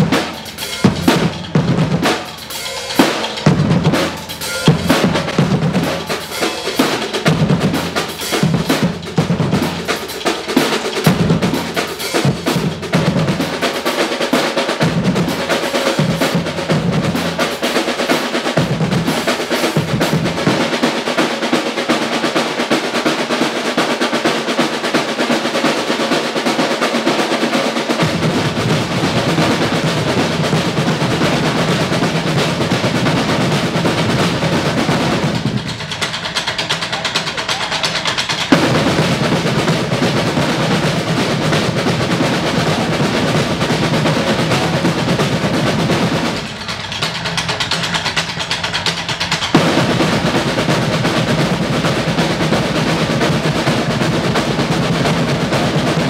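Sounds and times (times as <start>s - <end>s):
snare drums playing: 0.0s - 56.0s.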